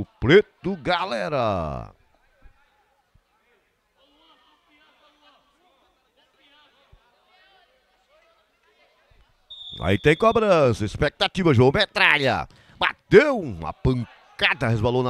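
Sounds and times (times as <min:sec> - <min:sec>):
shrill referee's whistle: 0:09.5 - 0:10.6.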